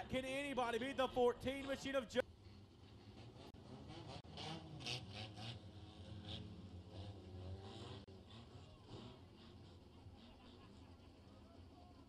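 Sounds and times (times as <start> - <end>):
distant race car engines: 0.0 - 12.0.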